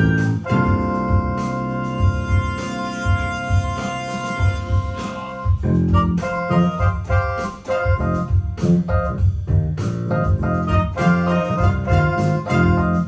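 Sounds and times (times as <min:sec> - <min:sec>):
electronic keyboards playing chords: 0:00.0 - 0:13.0
pulsing bass line: 0:00.0 - 0:13.0.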